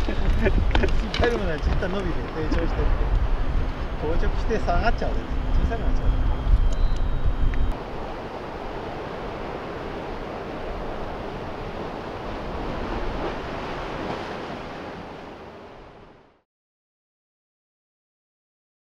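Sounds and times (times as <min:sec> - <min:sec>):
wind buffeting microphone: 0:00.0 - 0:16.2
surf at the shore: 0:00.0 - 0:16.4.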